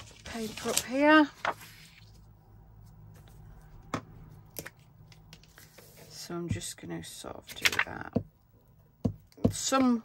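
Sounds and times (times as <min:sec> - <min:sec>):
paper and fabric rustling: 0:00.0 - 0:03.8.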